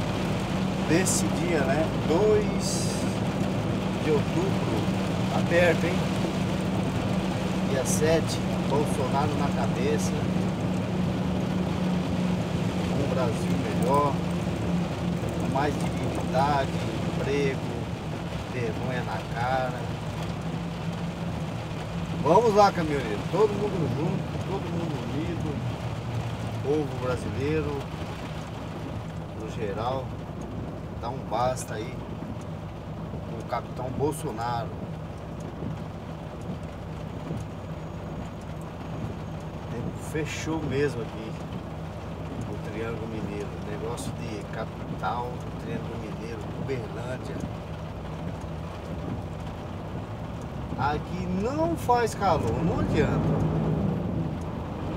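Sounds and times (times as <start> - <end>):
rain on windscreen: 0.0 - 54.9
road noise on wet road: 0.0 - 54.9
truck engine hum: 0.0 - 54.9.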